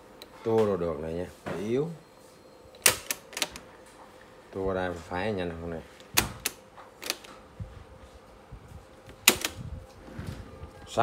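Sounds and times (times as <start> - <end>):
faint steady hum: 0.0 - 11.0
cassette deck buttons clicking: 2.8 - 3.7, 6.0 - 7.3, 9.2 - 9.6.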